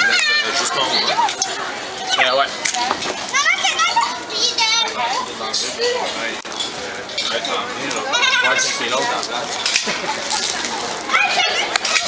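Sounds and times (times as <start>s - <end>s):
excited children's voices: 0.0s - 6.3s, 7.6s - 12.0s.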